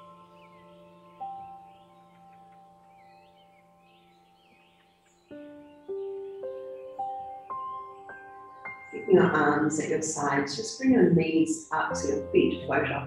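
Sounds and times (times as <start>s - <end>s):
small birds chirping: 0.0s - 13.0s.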